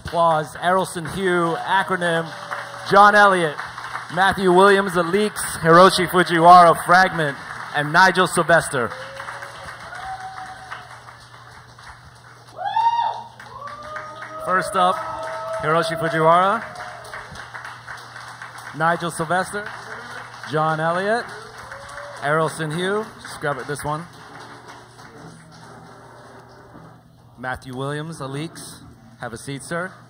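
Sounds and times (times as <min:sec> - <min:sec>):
audience applauding: 0:00.0 - 0:26.7
low electrical hum: 0:00.0 - 0:30.0.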